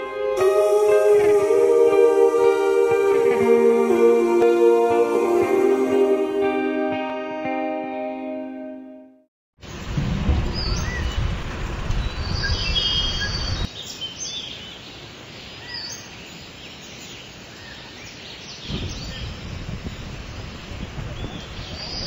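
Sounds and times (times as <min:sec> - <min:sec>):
wind rumbling on microphone: 0:09.7 - 0:13.7, 0:18.6 - 0:22.0
high bird chirps: 0:12.0 - 0:14.5.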